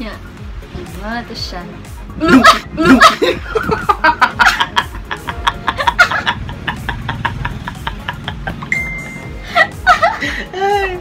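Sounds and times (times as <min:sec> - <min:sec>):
people laughing hard: 0:02.2 - 0:08.7, 0:09.4 - 0:11.0.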